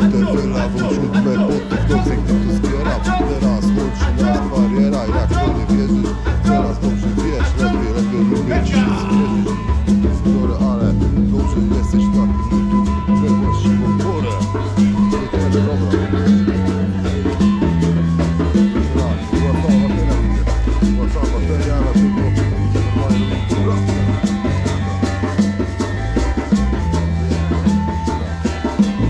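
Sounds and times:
bass line: 0.0s - 29.0s
live band music: 0.0s - 29.0s
percussion ticks: 0.0s - 29.0s.

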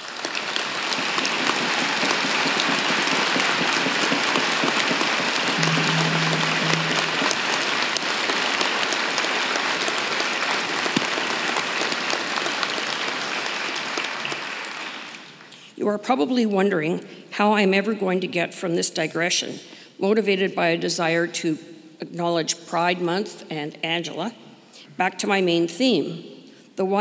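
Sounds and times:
audience applauding: 0.1s - 15.2s
low steady tone: 5.6s - 7.8s.

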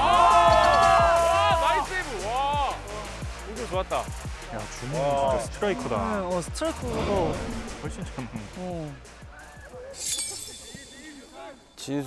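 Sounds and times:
background music: 0.0s - 12.0s
glassy shimmer sound effect: 10.0s - 11.8s.

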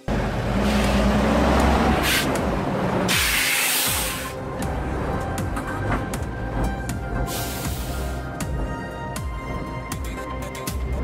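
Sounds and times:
diesel truck engine running: 0.0s - 11.0s.

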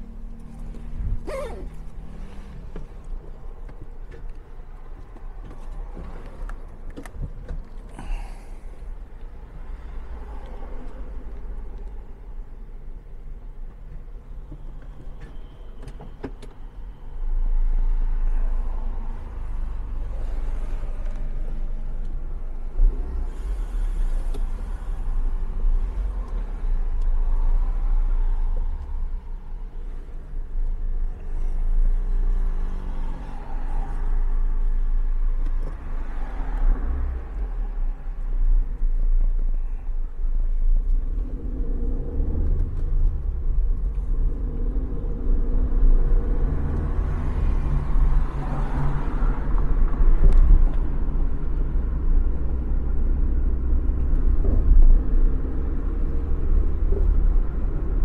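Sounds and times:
car engine: 0.0s - 58.0s
road rumble: 0.0s - 58.0s.

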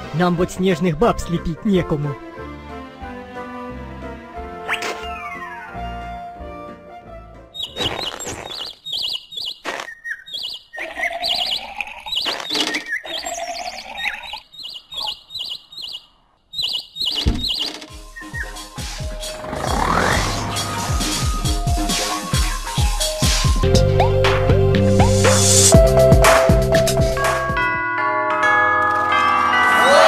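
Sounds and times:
music: 0.0s - 7.6s, 17.9s - 30.0s
small birds chirping: 7.5s - 24.2s
cartoon fart sound effect: 7.8s - 8.6s, 19.4s - 20.6s
sharp knocks: 17.2s - 17.9s.

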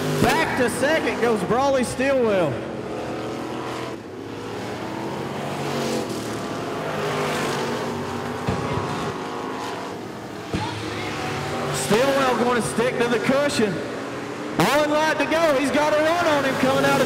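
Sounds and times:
race car engines running hard: 0.0s - 17.0s.

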